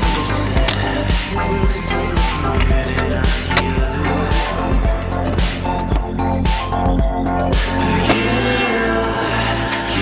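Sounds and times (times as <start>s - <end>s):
music with steady beat: 0.0s - 10.0s
skateboard clack: 2.5s - 3.8s.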